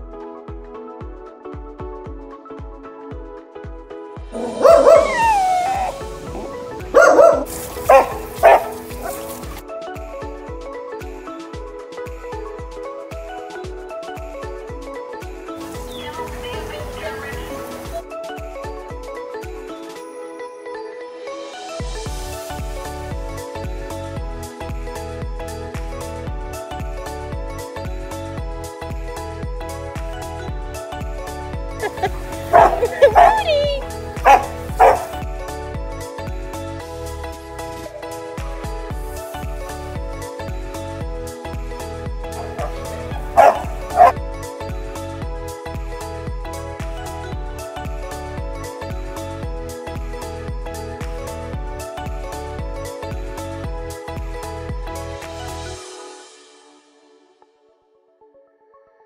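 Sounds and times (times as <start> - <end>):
background music with beat: 0.0 - 57.9
dog whining: 4.4 - 9.2, 32.5 - 35.1, 42.4 - 44.2
dog barking: 4.4 - 9.3, 32.5 - 33.6, 34.2 - 35.2, 42.4 - 44.2.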